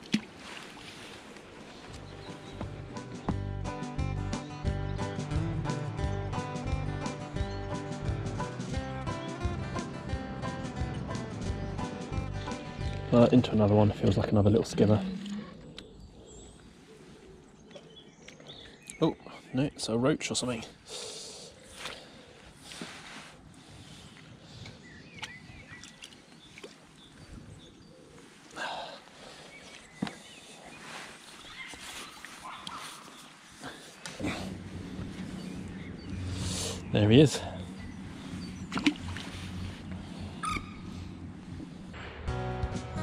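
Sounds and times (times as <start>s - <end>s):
faint bird chirps: 24.5s - 41.2s.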